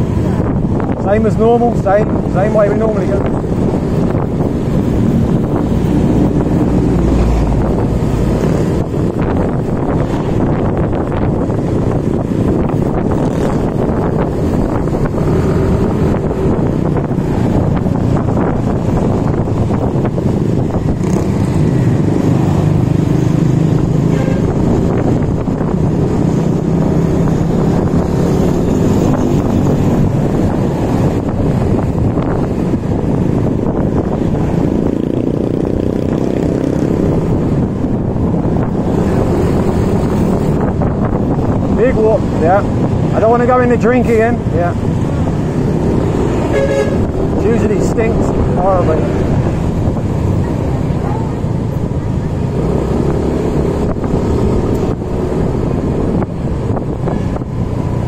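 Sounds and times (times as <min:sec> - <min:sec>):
wind buffeting microphone: 0:00.0 - 0:58.0.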